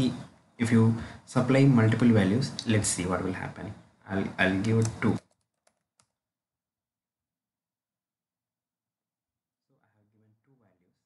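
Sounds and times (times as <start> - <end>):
computer keyboard keystrokes: 4.7 - 6.2.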